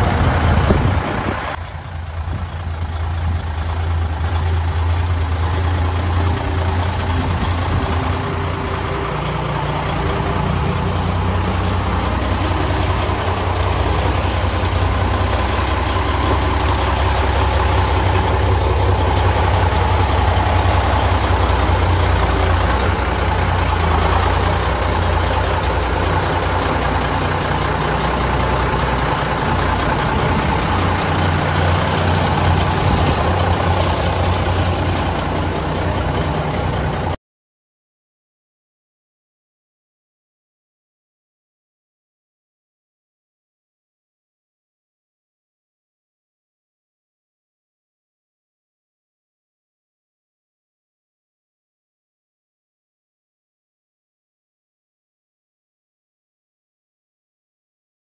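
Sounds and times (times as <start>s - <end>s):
truck engine idling: 0.0s - 37.2s.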